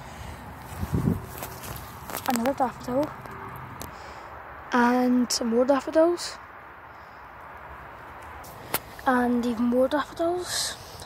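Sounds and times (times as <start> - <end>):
faint outdoor background noise: 0.0 - 11.0
footstep on grass: 0.6 - 2.6.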